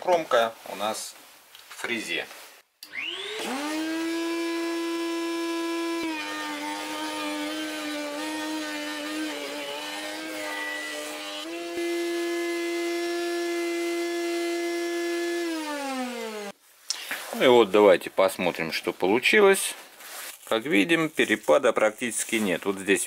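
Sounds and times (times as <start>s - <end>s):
router cutting wood: 2.8s - 16.6s
router whining: 2.8s - 16.6s.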